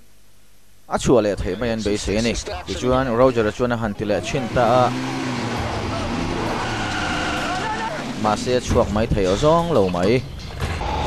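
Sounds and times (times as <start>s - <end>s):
road noise: 2.0s - 11.0s
car engine: 2.6s - 10.1s.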